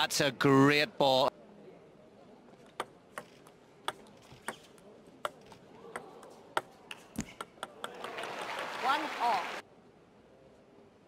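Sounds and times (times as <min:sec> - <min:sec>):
applause: 0:07.9 - 0:09.6.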